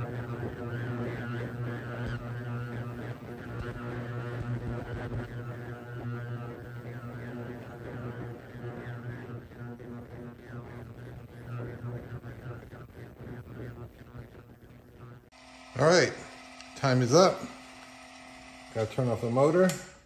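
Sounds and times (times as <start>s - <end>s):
ultrasonic cleaner buzzing drone: 0.0s - 19.8s.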